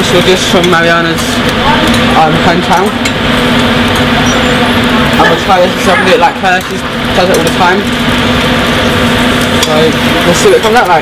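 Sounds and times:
extractor hood fan running: 0.0s - 11.0s.

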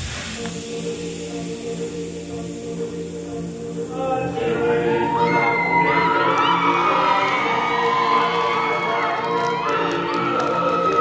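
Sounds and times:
group singing with music: 0.0s - 11.0s
audience cheering and whooping: 4.9s - 11.0s.

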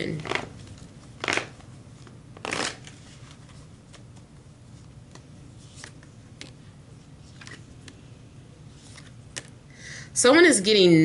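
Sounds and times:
cards being shuffled: 0.2s - 4.3s, 5.0s - 6.6s, 7.2s - 8.0s, 8.7s - 9.6s.

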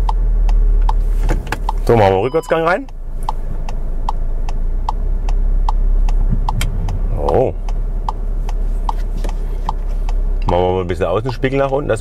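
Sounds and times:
engine idling hum: 0.0s - 12.0s
turn signal ticking: 0.0s - 12.0s.

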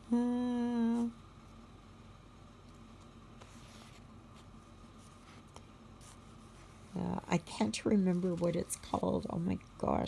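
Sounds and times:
woman saying uhhh: 0.0s - 1.2s.

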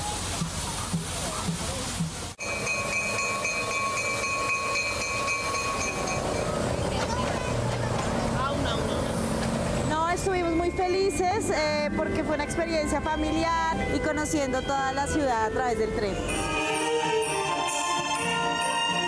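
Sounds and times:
steady rushing noise: 0.0s - 10.6s
steam locomotive whistle: 2.4s - 6.5s
people's voices: 5.9s - 16.4s.

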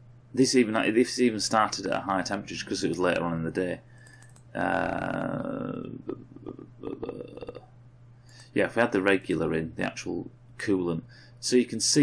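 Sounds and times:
computer mouse clicks: 4.0s - 4.5s
man making throat sounds: 4.6s - 7.7s.

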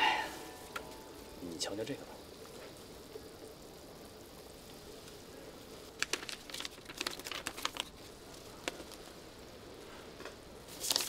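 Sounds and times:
background hiss: 0.0s - 11.0s
paper sheets rustling: 6.0s - 8.1s, 10.7s - 11.0s.

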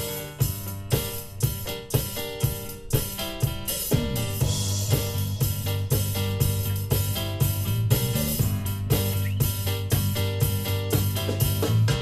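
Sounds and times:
drum kit beat: 0.0s - 12.0s
bass guitar: 3.9s - 12.0s.

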